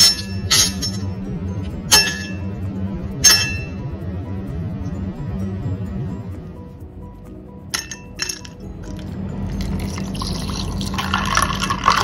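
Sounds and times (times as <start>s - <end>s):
background music: 0.0s - 12.0s
ice cube clinking in glass: 9.6s - 12.0s.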